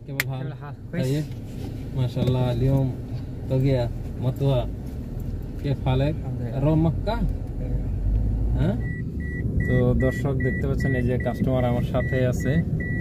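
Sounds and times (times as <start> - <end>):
car rumbling: 0.0 - 13.0
car warning chime beeping: 8.8 - 13.0.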